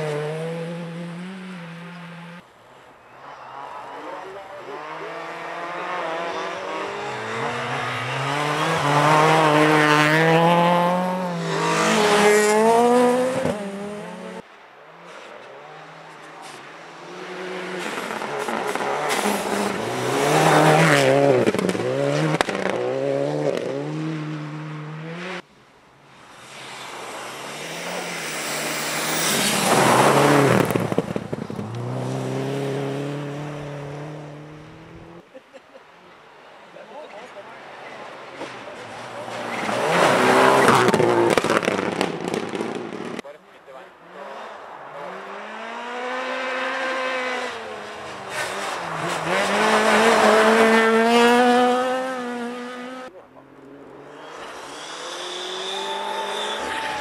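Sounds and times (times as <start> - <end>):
rally cars passing at full throttle: 0.0 - 57.0.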